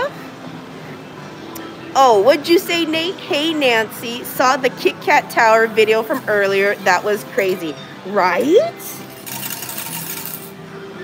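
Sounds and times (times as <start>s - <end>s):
coins clattering into metal cup: 8.8s - 10.6s.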